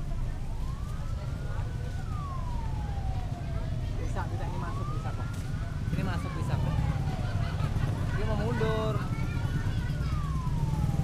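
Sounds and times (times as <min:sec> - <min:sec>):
emergency siren wailing: 0:00.0 - 0:11.0
low rumble of traffic: 0:00.0 - 0:11.0.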